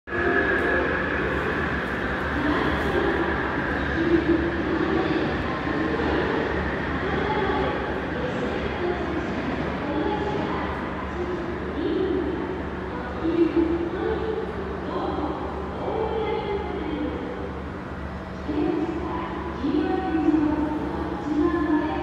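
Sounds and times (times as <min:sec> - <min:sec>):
train rumble: 0:00.1 - 0:22.0.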